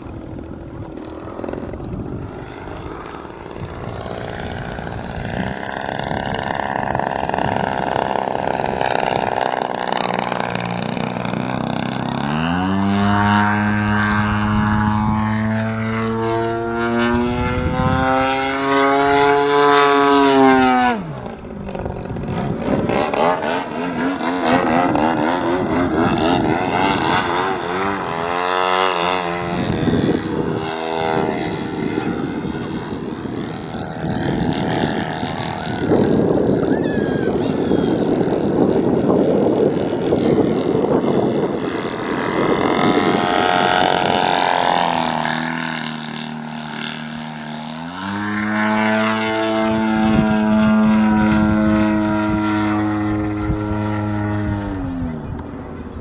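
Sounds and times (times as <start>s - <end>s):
model plane propeller drone: 0.0s - 56.0s.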